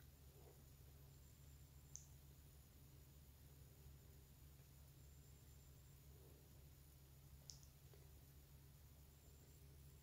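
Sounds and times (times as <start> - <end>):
low room hum: 0.0 - 10.0
faint click: 1.9 - 2.2, 7.4 - 8.1.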